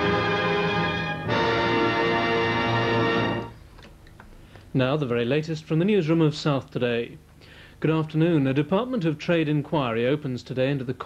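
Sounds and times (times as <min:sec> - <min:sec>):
film music closing chord: 0:00.0 - 0:03.6.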